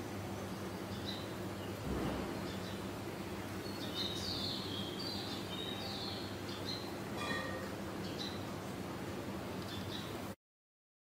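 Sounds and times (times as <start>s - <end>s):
small birds chirping: 0.0s - 8.9s, 9.5s - 10.3s
steady low hum: 0.0s - 10.4s.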